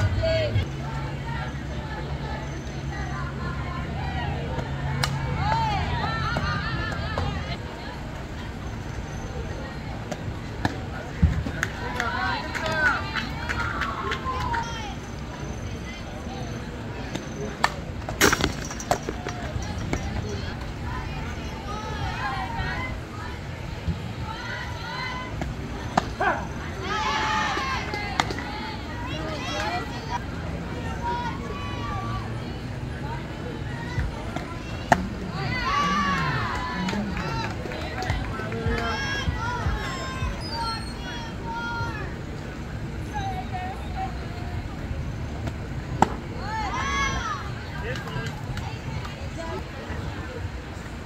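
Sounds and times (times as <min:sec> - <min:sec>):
people shouting and cheering: 0:00.0 - 0:17.8, 0:18.4 - 0:44.7, 0:46.0 - 0:51.0
high voices shouting: 0:20.2 - 0:42.2.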